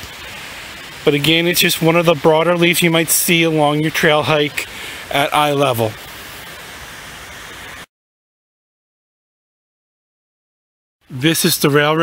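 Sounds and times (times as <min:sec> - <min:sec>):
outdoor background hiss: 0:00.0 - 0:07.9, 0:11.0 - 0:12.0.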